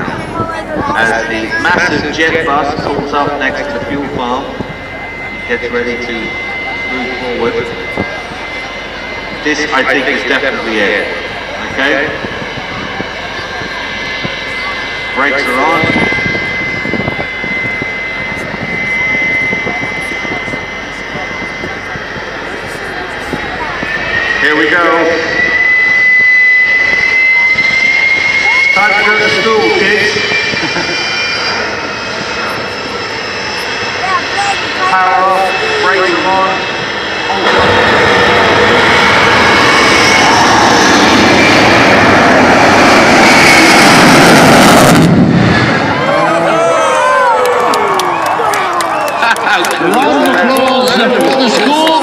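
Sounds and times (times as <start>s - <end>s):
people talking: 0.0s - 25.3s, 26.9s - 31.5s, 32.4s - 37.9s, 46.0s - 52.0s
jet engine roar with high whine: 0.0s - 52.0s.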